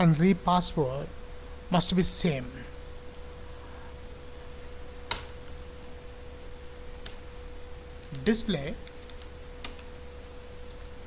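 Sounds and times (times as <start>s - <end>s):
faint electrical tone: 0.0s - 11.0s
low hum: 0.0s - 11.0s
computer keyboard keystroke: 8.8s - 9.9s.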